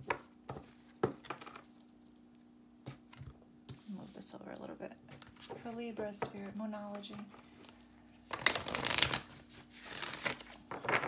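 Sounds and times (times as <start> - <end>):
cards being shuffled: 7.3 - 11.0.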